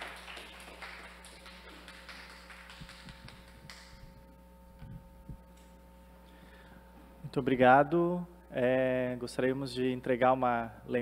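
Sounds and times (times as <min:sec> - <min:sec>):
quiet audience applause: 0:00.0 - 0:03.9.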